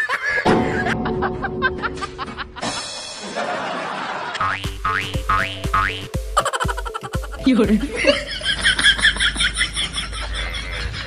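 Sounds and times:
cartoon boing: 4.4s - 6.1s
backing music with bass beat: 4.4s - 8.0s.

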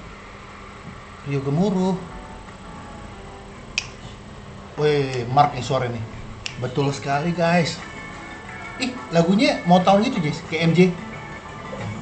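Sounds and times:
low steady background noise: 0.0s - 12.0s
finger snap: 3.7s - 4.0s, 6.4s - 6.6s.

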